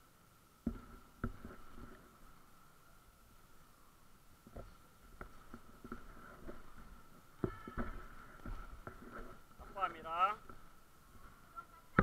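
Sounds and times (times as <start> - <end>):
footballs thudding on concrete: 7.4 - 9.4.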